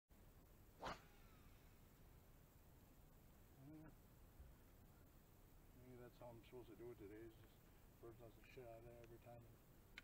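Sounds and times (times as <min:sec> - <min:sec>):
fishing rod swish: 0:00.8 - 0:01.5.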